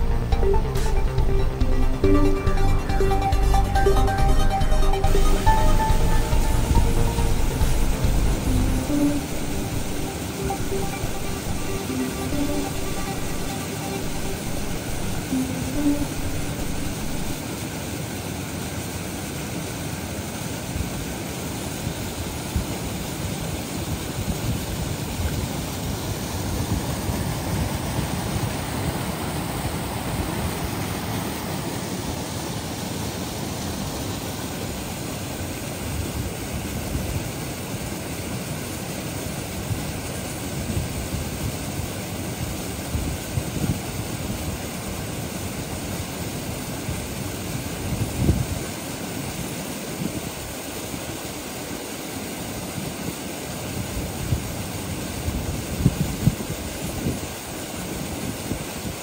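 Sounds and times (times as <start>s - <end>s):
stream rushing over stones: 6.8s - 59.0s.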